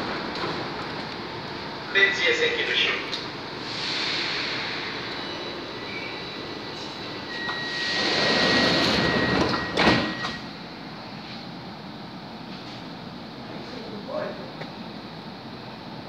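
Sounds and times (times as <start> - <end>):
train hum: 0.0 - 16.0
door warning tone: 4.9 - 10.6
sliding doors shutting: 6.7 - 10.5.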